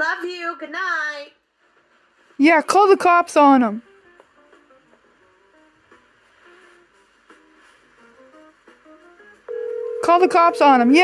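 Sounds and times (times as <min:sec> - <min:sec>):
soft plucked background music: 0:02.3 - 0:11.0
phone ringback tone: 0:09.5 - 0:11.0.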